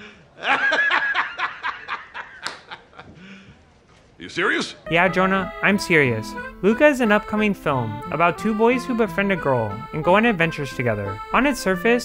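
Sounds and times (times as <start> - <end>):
man laughing hard: 0.4 - 3.2.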